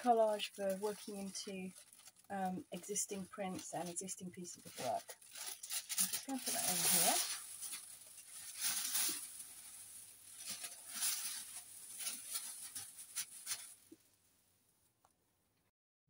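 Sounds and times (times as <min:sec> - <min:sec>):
tissue paper rustling and crinkling: 0:00.0 - 0:13.9.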